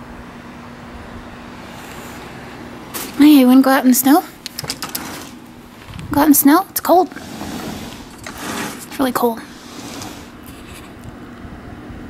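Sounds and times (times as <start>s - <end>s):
low rumbling air noise: 0.0s - 12.0s
faint rubbing sounds: 6.8s - 11.0s.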